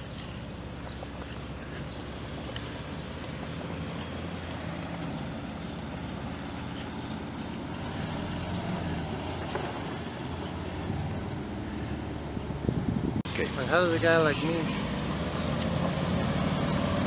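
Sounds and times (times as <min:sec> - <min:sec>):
truck engine running: 0:00.0 - 0:17.0.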